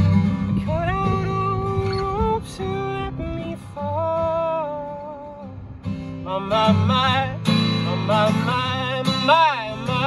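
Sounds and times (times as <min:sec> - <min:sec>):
man singing: 0:00.0 - 0:05.6, 0:06.2 - 0:10.0
strummed acoustic guitar: 0:00.0 - 0:10.0.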